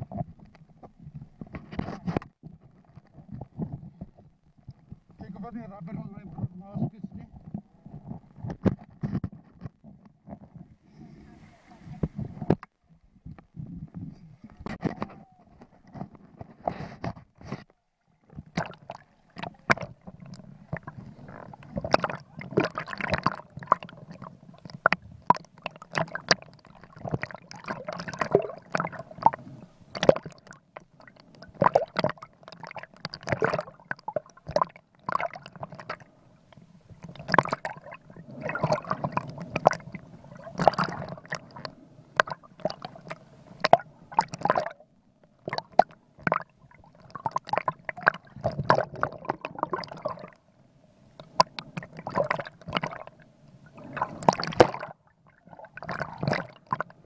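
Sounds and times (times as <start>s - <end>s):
muffled underwater water sloshing: 0.0s - 57.0s.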